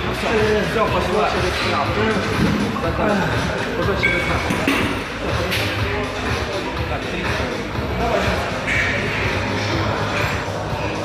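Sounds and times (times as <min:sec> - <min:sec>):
background music: 0:00.0 - 0:11.0
indistinct voices: 0:01.2 - 0:11.0.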